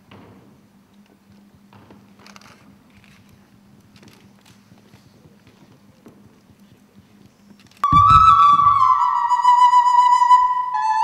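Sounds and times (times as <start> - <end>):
low thump: 7.8 - 9.4
flute held note: 7.8 - 11.0.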